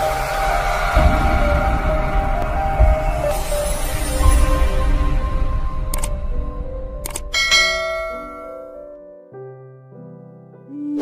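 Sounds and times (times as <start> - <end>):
bell chime: 7.3 - 8.9.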